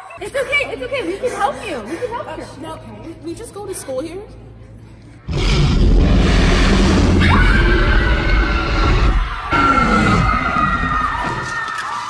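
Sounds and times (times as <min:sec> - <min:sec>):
loud deep rumble: 0:05.2 - 0:11.4.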